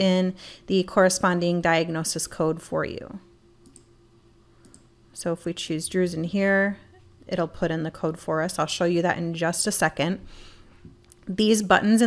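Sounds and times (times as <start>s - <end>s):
faint steady hum: 0.0s - 12.0s
computer mouse clicks: 3.6s - 3.9s, 4.6s - 4.9s.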